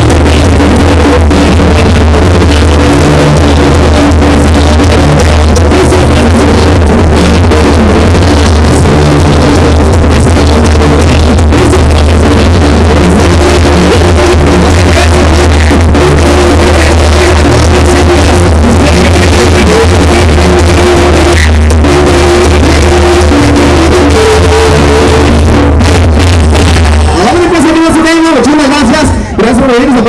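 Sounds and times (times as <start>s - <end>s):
heavy bass line: 0.0s - 30.0s.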